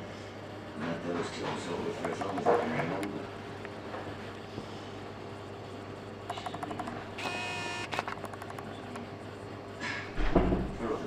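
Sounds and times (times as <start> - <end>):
steady low hum: 0.0 - 11.0
short electronic buzzing tone: 7.2 - 8.1.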